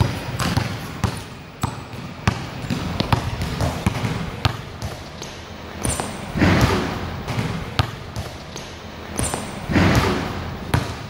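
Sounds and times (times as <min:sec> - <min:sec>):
basketball bouncing on hard court: 0:00.0 - 0:11.0.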